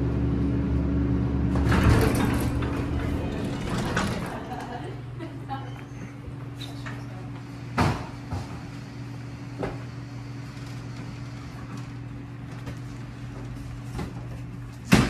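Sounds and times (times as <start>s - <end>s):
elevator doors closing: 0.0s - 14.4s
steady low hum: 0.0s - 15.0s.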